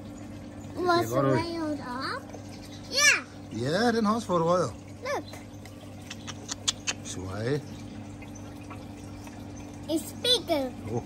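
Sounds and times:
steady low hum: 0.0s - 11.0s
water trickling and dripping: 0.0s - 11.0s.

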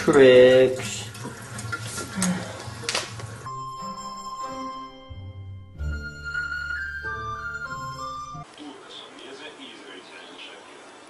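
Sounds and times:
water running in a bathtub: 0.0s - 3.5s.

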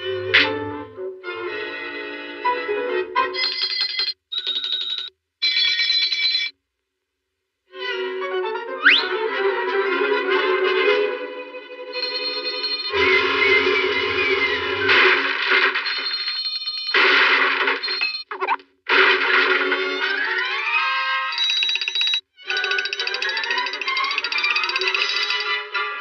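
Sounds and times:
orchestral cartoon music: 0.0s - 3.4s, 7.8s - 12.1s, 13.0s - 15.4s
hand bells ringing rapidly: 21.4s - 25.4s.

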